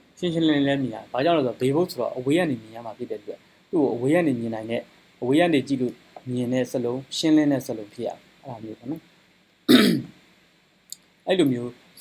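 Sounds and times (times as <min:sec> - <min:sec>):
man clearing his throat: 0:09.7 - 0:10.1.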